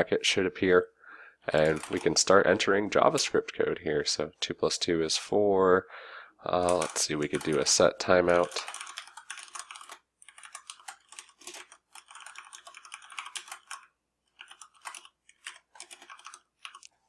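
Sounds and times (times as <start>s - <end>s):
computer keyboard typing: 1.5s - 3.2s, 6.6s - 17.0s.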